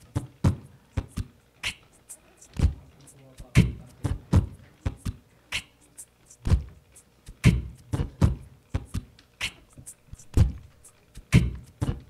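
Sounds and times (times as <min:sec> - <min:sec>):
beatboxed snare hit: 0:00.0 - 0:12.0
deep beatboxed kick thumps: 0:00.0 - 0:12.0
hissing beatboxed hi-hat: 0:00.0 - 0:12.0.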